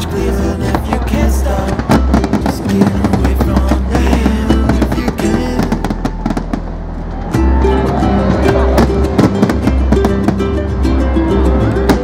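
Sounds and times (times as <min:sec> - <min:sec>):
fireworks popping and crackling: 0:00.0 - 0:06.9, 0:08.3 - 0:10.6
background music: 0:00.0 - 0:12.0.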